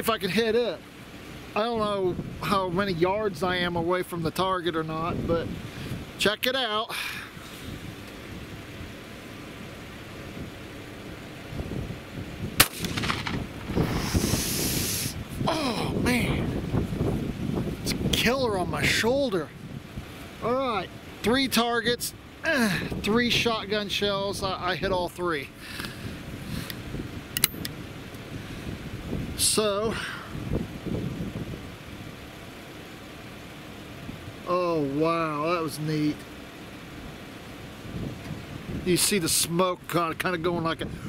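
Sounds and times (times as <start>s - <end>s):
wind buffeting microphone: 1.6s - 3.8s, 4.9s - 6.2s, 11.4s - 21.4s, 25.9s - 32.1s, 37.8s - 39.3s
sharp clicks: 12.6s - 13.8s, 27.4s - 27.8s
shotgun shot: 12.6s - 14.2s.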